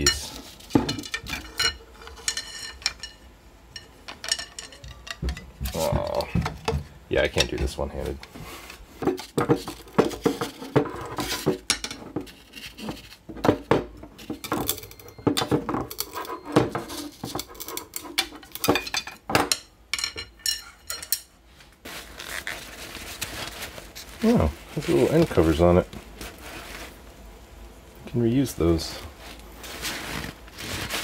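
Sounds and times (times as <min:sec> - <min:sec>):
arrow shafts clattering on a table: 0:00.0 - 0:05.8, 0:09.0 - 0:21.3.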